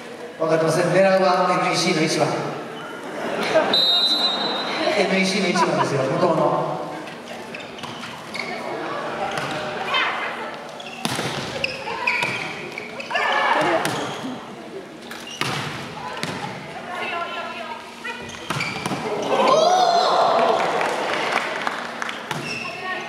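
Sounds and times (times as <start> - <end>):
crowd voices and shouts: 6.4 - 15.0, 15.7 - 23.0.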